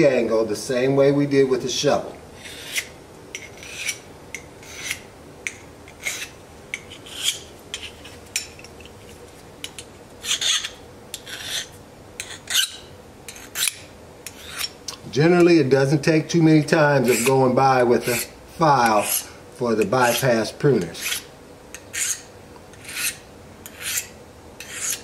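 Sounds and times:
file rasping on metal blade: 2.4 - 4.0, 4.6 - 5.1, 5.9 - 8.2, 10.2 - 14.8, 17.0 - 17.4, 18.0 - 19.4, 20.0 - 25.0.

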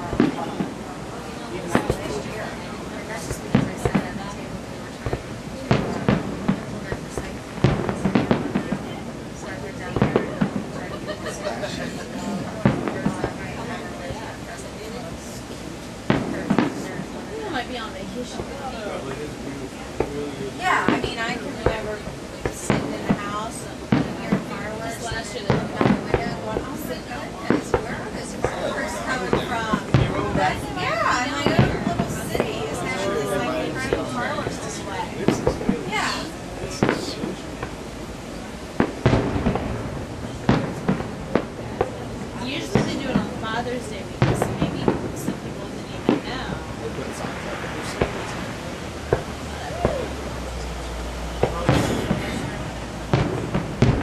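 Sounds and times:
fireworks banging: 0.0 - 54.0.

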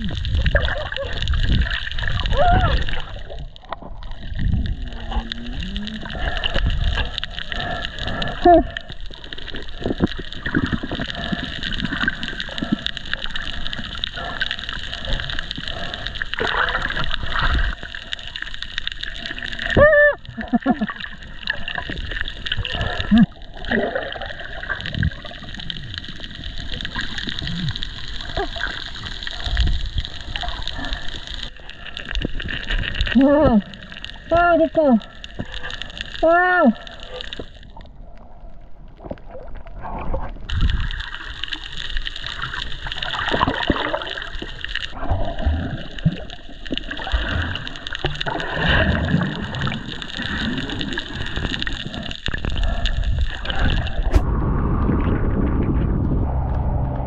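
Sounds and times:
underwater hiss and gurgling: 0.0 - 55.6.

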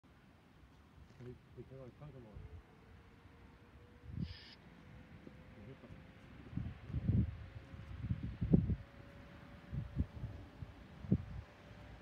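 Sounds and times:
wind buffeting microphone: 4.0 - 4.3, 6.0 - 12.0
distant electric train whine: 8.6 - 12.0.

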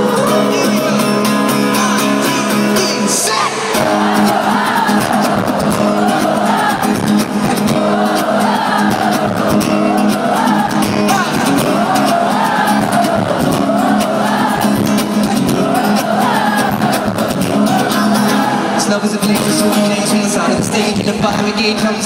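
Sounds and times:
live pop music: 0.0 - 22.0
wordless sung vocal: 0.0 - 22.0
crowd cheering: 1.7 - 20.9.

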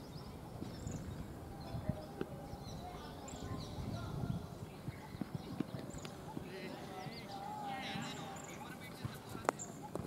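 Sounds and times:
faint birdsong chirping: 0.0 - 10.0.

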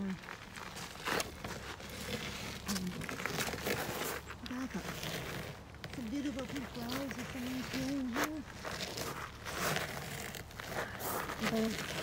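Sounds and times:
crinkling handling rustles: 0.0 - 12.0.

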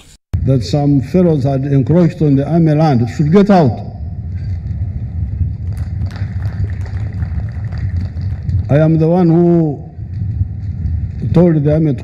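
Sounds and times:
low rumble of background noise: 0.4 - 12.0.

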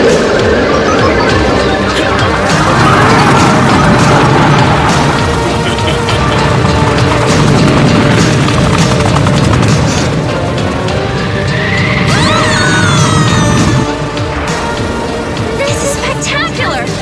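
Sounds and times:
low energy blast with crackling: 0.0 - 12.4
dramatic background music: 0.0 - 17.0.

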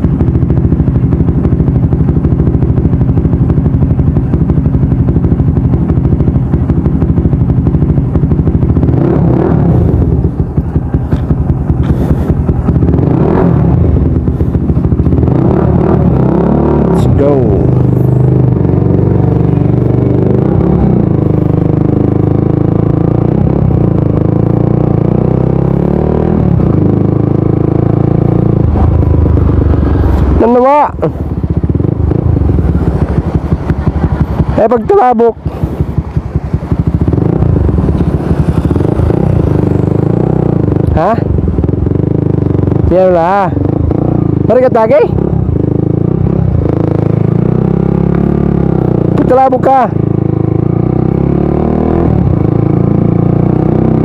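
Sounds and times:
motorcycle engine running: 0.0 - 54.0.

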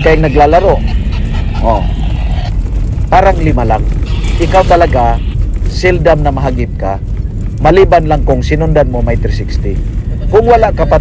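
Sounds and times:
vehicle driving rumble: 0.0 - 11.0.

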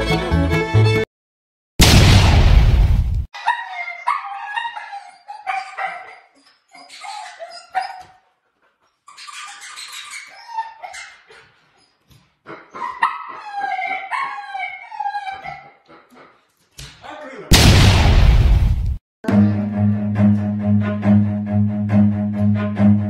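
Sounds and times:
dog whining and yipping: 3.4 - 8.2, 9.1 - 15.8.

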